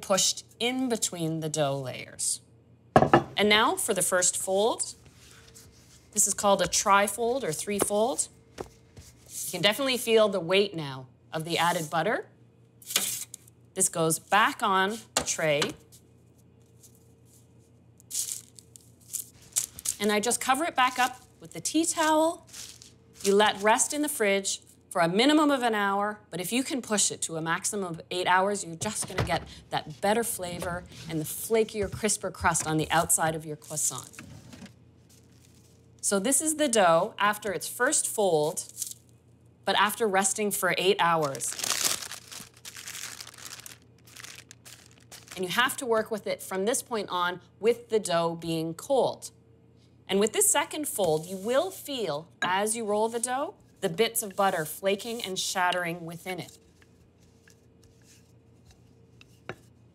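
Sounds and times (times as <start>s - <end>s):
papery rustle: 22.5s - 23.7s, 41.2s - 45.4s.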